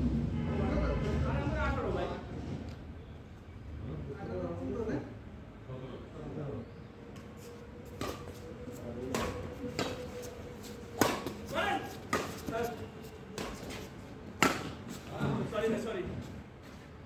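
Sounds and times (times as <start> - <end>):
rackets hitting shuttlecock: 7.9 - 8.4, 9.1 - 15.0.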